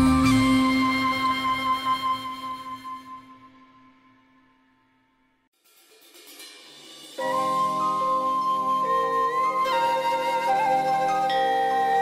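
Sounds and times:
meditative music: 0:00.0 - 0:04.6, 0:06.9 - 0:12.0.

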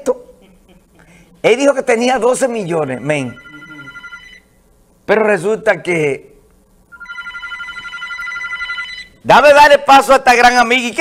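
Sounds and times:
electronic telephone ringing: 0:02.8 - 0:04.4, 0:06.9 - 0:09.2.

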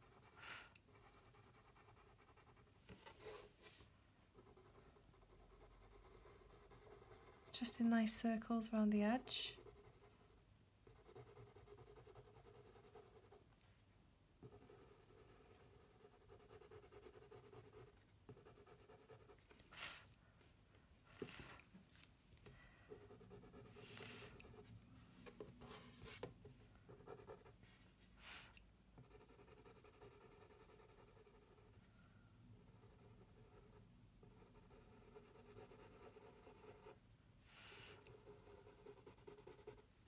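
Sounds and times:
coloured pencil rubbing on paper: 0:09.2 - 0:13.4, 0:14.4 - 0:20.1, 0:26.9 - 0:31.8, 0:32.6 - 0:39.9.

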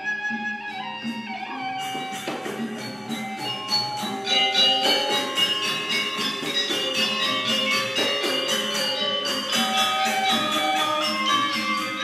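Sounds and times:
gamelan metallophones playing: 0:00.0 - 0:12.0.

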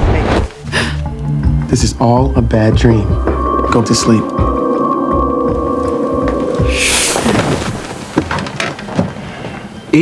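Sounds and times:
loud rumbling rush of noise: 0:03.4 - 0:08.2.

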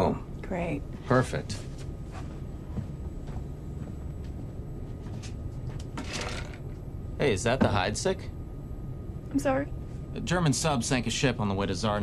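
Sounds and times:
aircraft cabin rumble: 0:01.2 - 0:12.0.

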